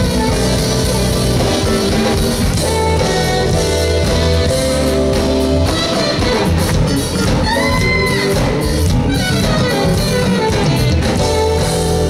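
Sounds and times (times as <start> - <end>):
jazz band playing: 0.0 - 12.0.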